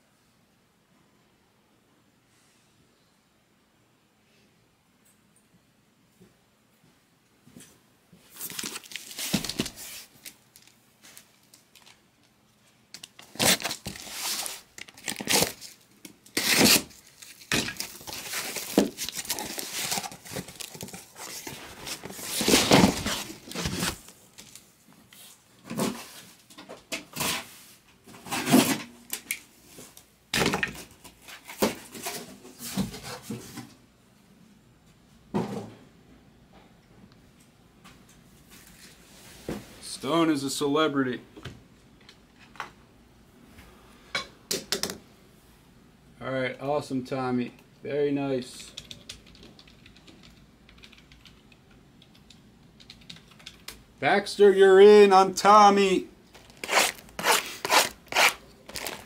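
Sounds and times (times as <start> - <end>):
cardboard rustling and scraping: 8.3 - 11.9, 13.2 - 15.8, 16.4 - 24.6, 56.4 - 59.0
cardboard tearing: 8.4 - 10.7, 13.2 - 24.1, 56.4 - 59.0.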